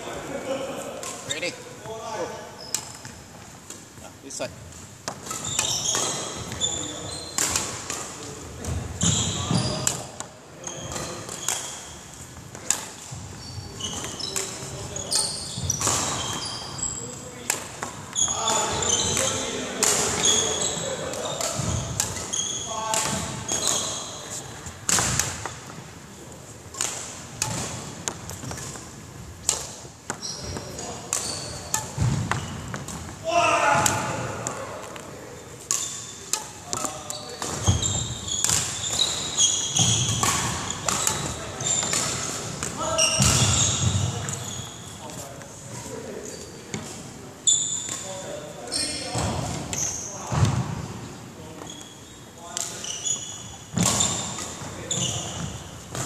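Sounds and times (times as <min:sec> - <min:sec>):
rubber soles squeaking: 0:05.3 - 0:07.6, 0:09.0 - 0:09.9, 0:13.1 - 0:17.4, 0:18.1 - 0:24.8, 0:29.5 - 0:33.6, 0:35.8 - 0:45.4, 0:51.4 - 0:55.6.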